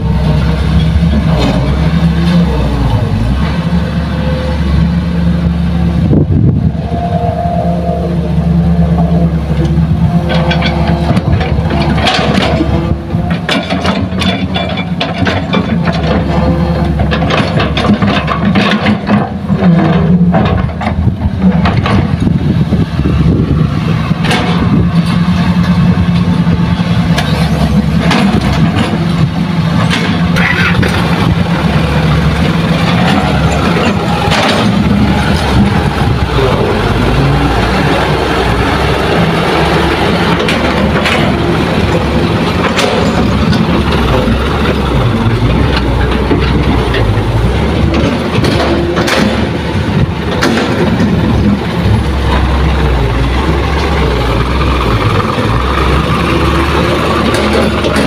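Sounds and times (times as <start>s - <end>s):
diesel engines running: 0.0s - 58.0s.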